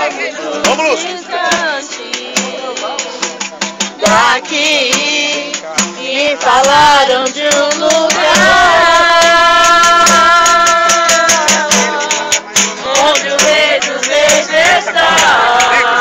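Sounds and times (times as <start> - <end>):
group singing a hymn: 0.0 - 16.0
jingling frame drum: 0.4 - 16.0.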